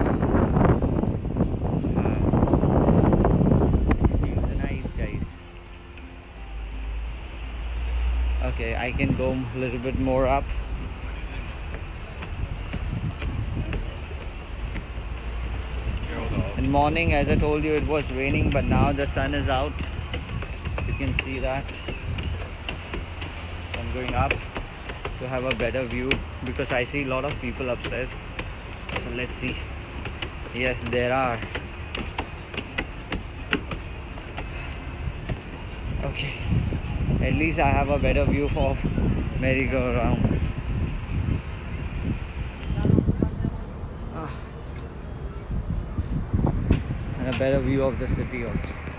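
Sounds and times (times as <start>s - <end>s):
wind buffeting microphone: 0.0s - 5.4s, 8.2s - 48.9s
footsteps on wooden stairs: 8.9s - 43.0s.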